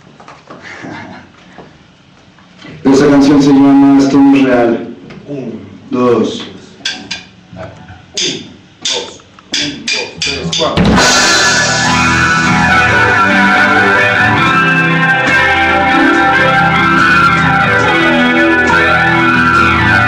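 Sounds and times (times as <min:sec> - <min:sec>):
drum kit playing: 0:08.2 - 0:20.0
sharp hits: 0:08.2 - 0:20.0
distorted electric guitar: 0:10.8 - 0:20.0.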